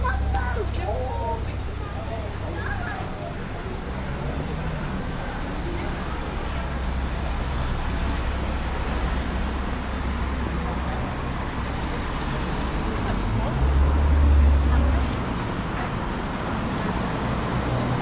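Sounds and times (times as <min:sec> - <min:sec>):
cars driving past slowly: 0:00.0 - 0:18.0.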